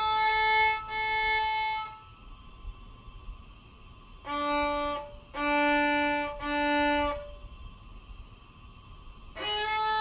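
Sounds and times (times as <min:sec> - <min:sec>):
violin bowed note: 0:00.0 - 0:02.3, 0:04.2 - 0:07.6, 0:09.3 - 0:10.0.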